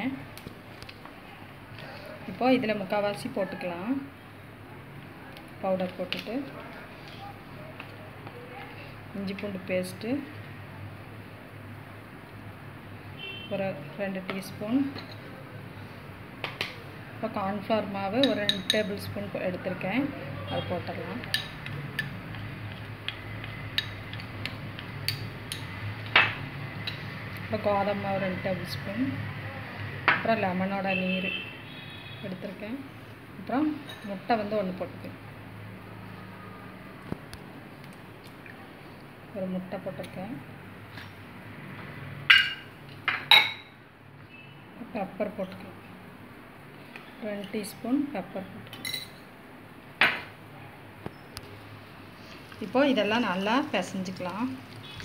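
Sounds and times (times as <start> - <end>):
glass bowls clinking: 42.3 - 43.8, 48.7 - 49.2
metal spoon clinking against glass: 48.7 - 49.2.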